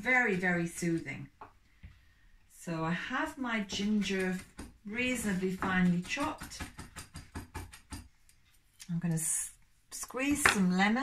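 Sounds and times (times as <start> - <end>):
knife chopping on wooden board: 3.7 - 8.1.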